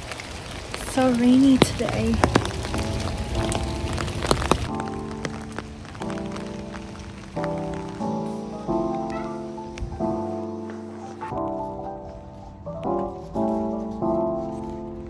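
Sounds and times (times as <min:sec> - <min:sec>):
rain tapping on umbrella: 0:00.0 - 0:15.0
soft keyboard chords: 0:00.9 - 0:15.0.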